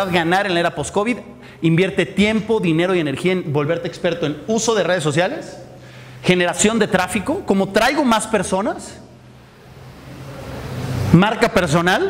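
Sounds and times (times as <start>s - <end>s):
low steady hum: 0.0s - 12.0s
faint hiss: 9.0s - 12.0s.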